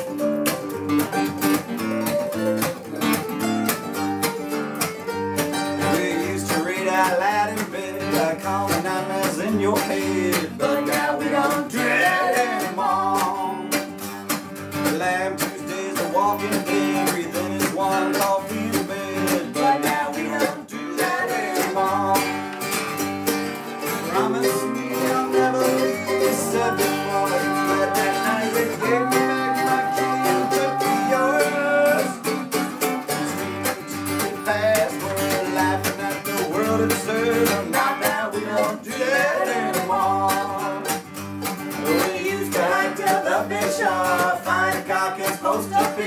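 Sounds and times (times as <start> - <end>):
picked mandolin: 0.0 - 46.0
strummed acoustic guitar: 0.0 - 46.0
people singing: 5.8 - 14.2, 14.8 - 22.8, 23.8 - 41.1, 41.7 - 46.0.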